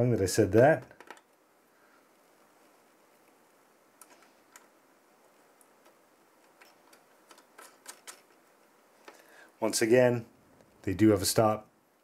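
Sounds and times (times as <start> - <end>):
metal nuts clicking: 5.8 - 8.4.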